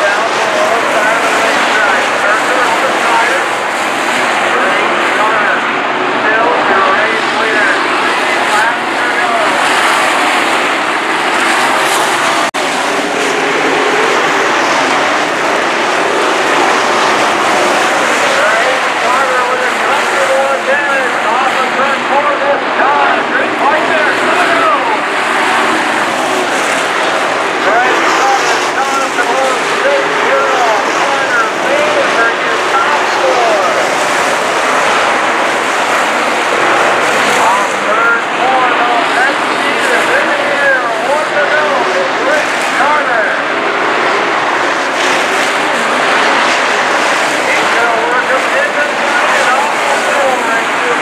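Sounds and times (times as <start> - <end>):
race car engines revving: 0.0 - 51.0.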